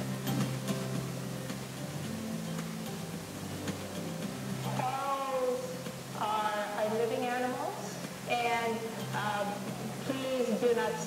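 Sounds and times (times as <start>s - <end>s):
film music with low notes: 0.0s - 6.2s.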